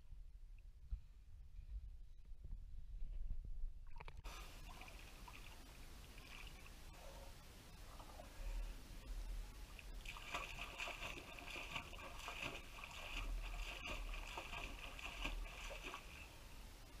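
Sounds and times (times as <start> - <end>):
water splashing and lapping: 3.9 - 16.9.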